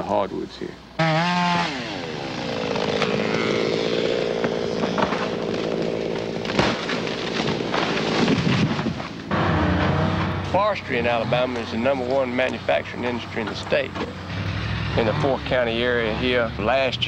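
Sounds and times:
chainsaw cutting: 1.0s - 16.3s
tree cracking: 2.2s - 9.4s.

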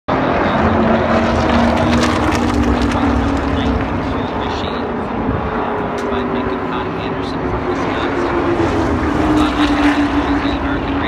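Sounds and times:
race car engine passing: 0.1s - 11.0s.

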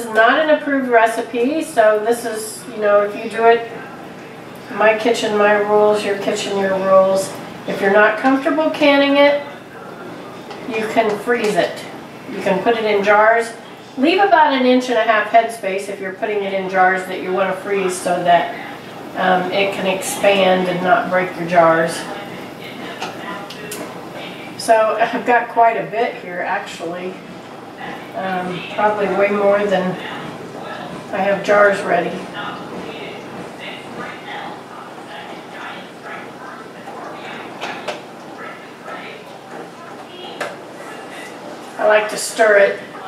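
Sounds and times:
faint murmur of talk: 0.0s - 15.6s, 16.7s - 43.0s.

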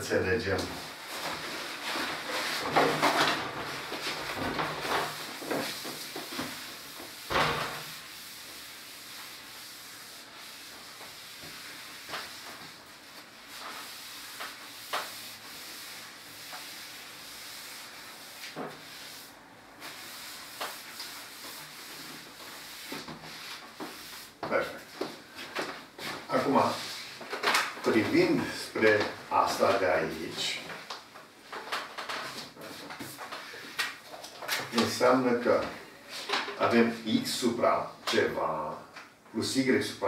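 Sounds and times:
cloth wiping a chalkboard: 0.4s - 31.0s, 32.2s - 38.4s.

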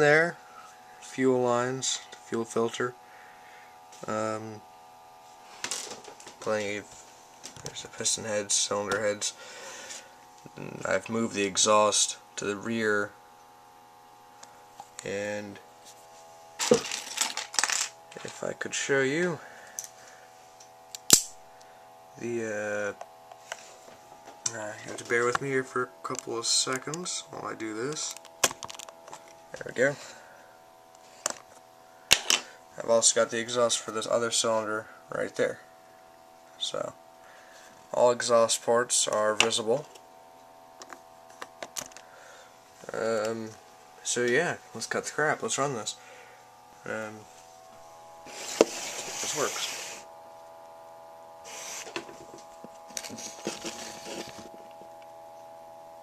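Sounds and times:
faint steady hum: 0.0s - 56.0s.

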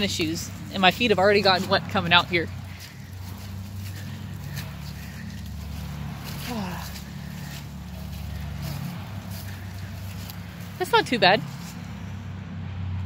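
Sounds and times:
stroller pushed across wet grass: 0.0s - 12.3s
footsteps: 0.0s - 12.4s
steady low hum: 0.0s - 13.0s.

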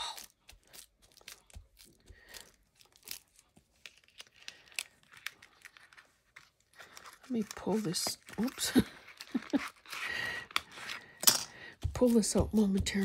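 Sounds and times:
paper rustling and crinkling: 0.3s - 11.2s.

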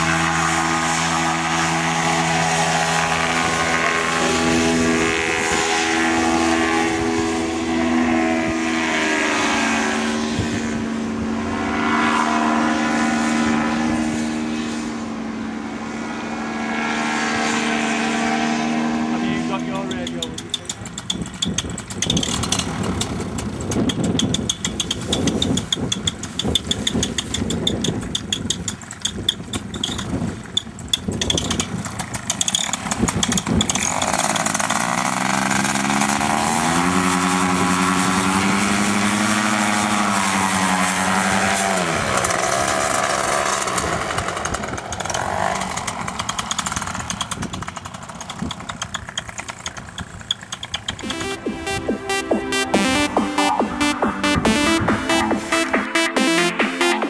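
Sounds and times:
paramotor engine: 0.0s - 57.0s
wind buffeting microphone: 19.4s - 35.9s
music: 51.0s - 57.0s.

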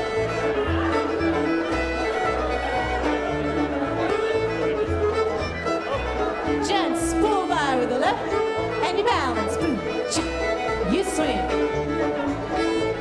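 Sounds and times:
fiddle-led string band: 0.0s - 13.0s.

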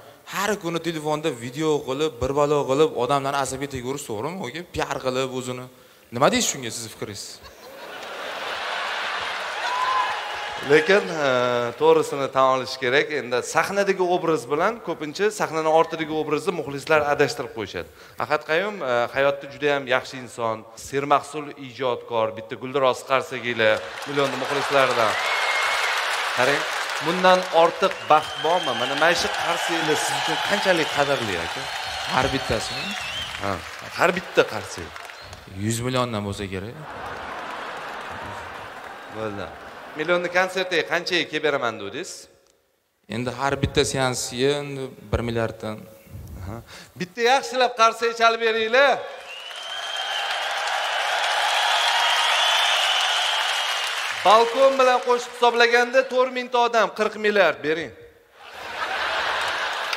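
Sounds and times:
audience applauding: 7.8s - 12.4s, 23.2s - 40.7s, 49.1s - 55.9s, 58.4s - 59.9s
man speaking: 26.4s - 36.9s.

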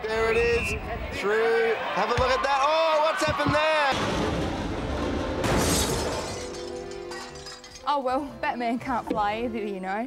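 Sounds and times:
background music: 3.7s - 10.0s
sudden crash: 3.9s - 6.7s.

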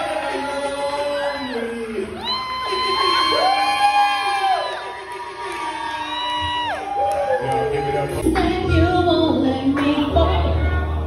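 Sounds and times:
crowd in large room: 0.0s - 11.0s
music: 0.0s - 11.0s.

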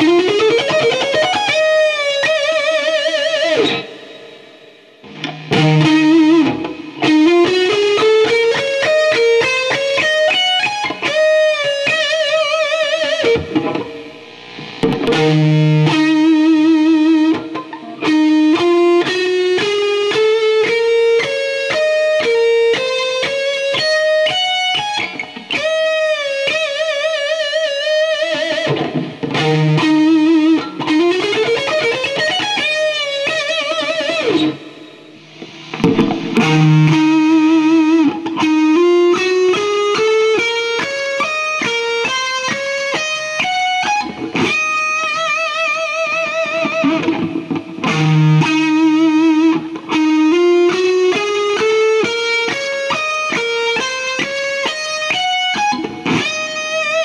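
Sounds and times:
electric guitar solo: 0.0s - 57.0s.

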